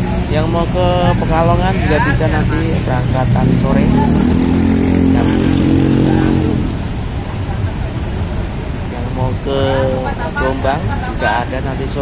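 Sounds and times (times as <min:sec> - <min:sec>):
small motorcycle passing by: 0:03.4 - 0:06.8.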